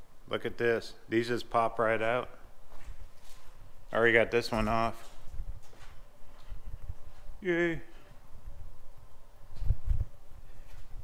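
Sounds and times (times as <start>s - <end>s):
faint rustling of handling: 2.6s - 3.8s.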